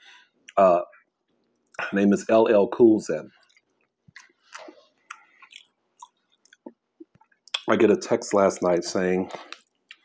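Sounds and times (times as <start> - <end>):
man chewing wet food: 3.4 - 7.6, 9.3 - 10.0.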